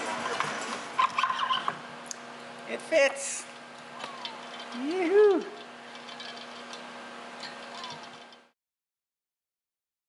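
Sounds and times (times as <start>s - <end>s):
steady low hum: 0.0s - 8.6s.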